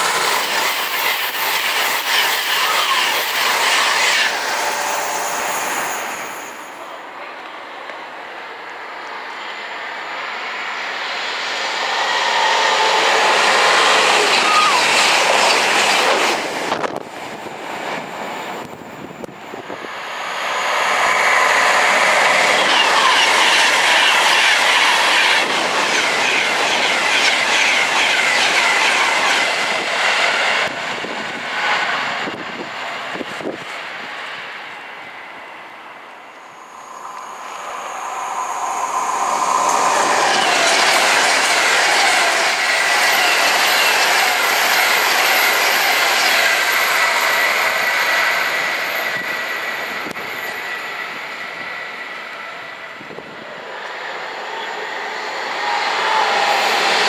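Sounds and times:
high squealing whine: 0.0s - 7.0s, 8.9s - 17.4s, 18.0s - 57.0s
train wheel and rail noise: 0.0s - 57.0s.

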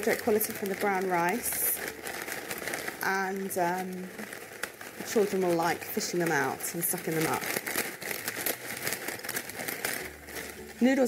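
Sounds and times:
plastic packet crinkling: 0.0s - 11.0s.

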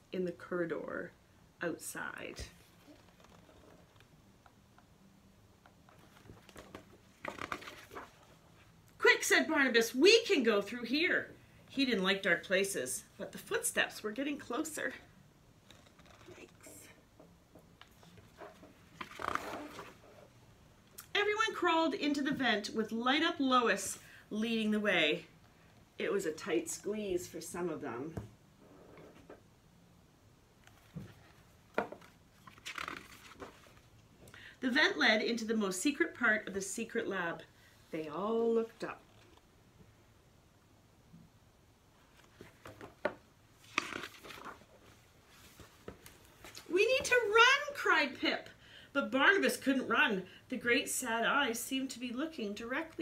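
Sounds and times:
book page turning: 5.9s - 8.4s, 17.8s - 20.3s, 30.6s - 33.9s, 42.1s - 46.7s.

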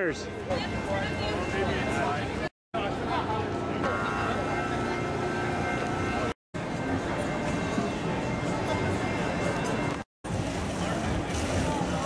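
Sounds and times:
voices of passers-by: 0.0s - 12.0s.

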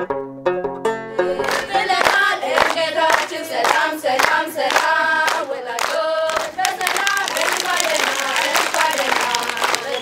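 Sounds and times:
girls singing together: 1.3s - 10.0s
hands clapping in time: 1.3s - 10.0s.

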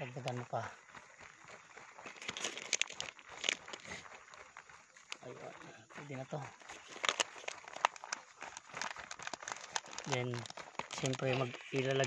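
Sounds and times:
person speaking: 0.0s - 0.8s, 5.2s - 6.9s, 9.9s - 12.0s
plastic bag crinkling: 0.0s - 12.0s.

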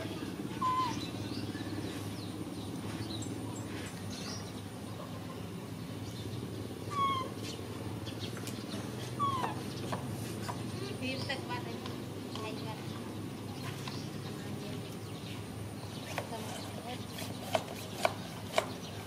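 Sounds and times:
short chirping calls: 0.5s - 4.5s, 6.8s - 10.4s.

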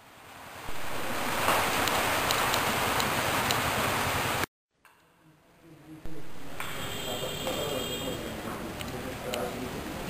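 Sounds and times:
steady rushing noise: 0.6s - 4.4s.

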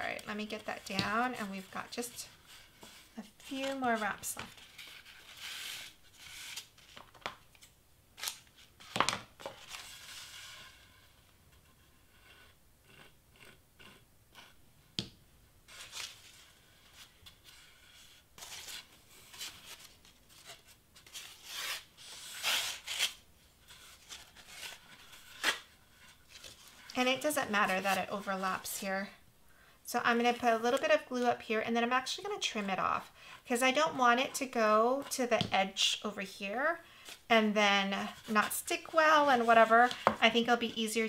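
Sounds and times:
paper rustling and crinkling: 18.4s - 28.4s.

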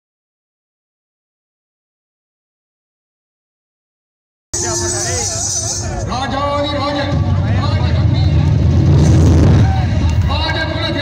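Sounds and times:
heavy bass: 4.6s - 11.0s.

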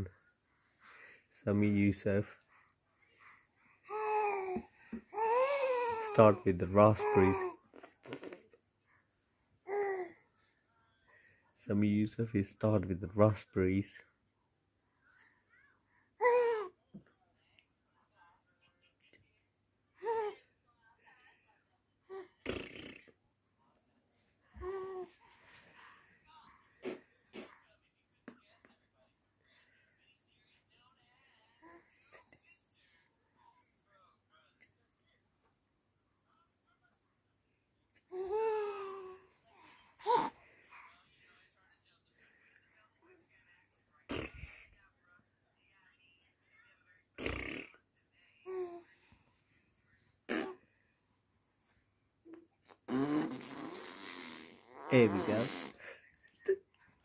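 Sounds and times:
baby blowing a raspberry: 22.4s - 23.1s, 26.8s - 27.6s, 44.1s - 44.6s, 47.2s - 47.8s, 50.3s - 50.6s, 52.6s - 55.8s.

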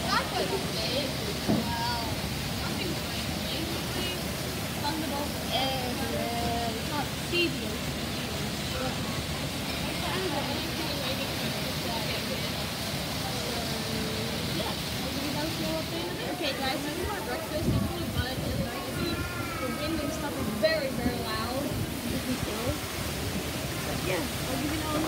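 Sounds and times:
faint voices: 0.0s - 25.0s
wind and heavy rain rushing: 0.0s - 25.0s.

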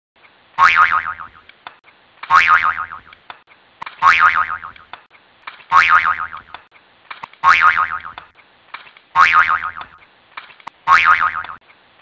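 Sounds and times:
cartoon spring boing: 0.6s - 1.4s, 2.3s - 3.1s, 4.0s - 4.8s, 5.7s - 6.4s, 7.4s - 8.2s, 9.2s - 9.9s, 10.9s - 11.6s.

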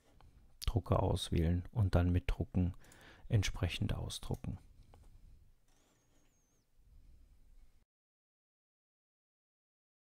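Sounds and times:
faint high wavering whine: 5.2s - 7.8s.

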